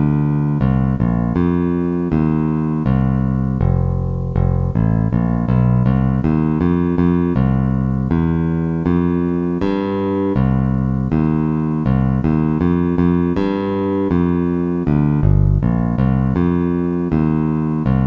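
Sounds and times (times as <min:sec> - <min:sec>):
slow single-note bass line: 0:00.0 - 0:18.0.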